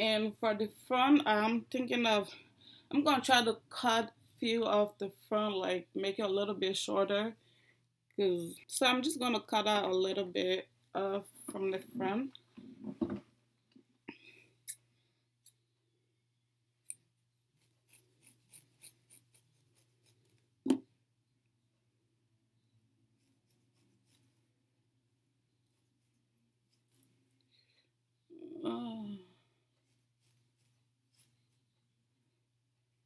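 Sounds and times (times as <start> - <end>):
scissors snipping hair: 17.6 - 20.4.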